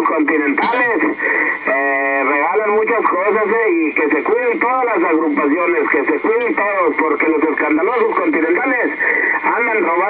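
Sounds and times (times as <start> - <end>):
man talking over radio: 0.0 - 10.0.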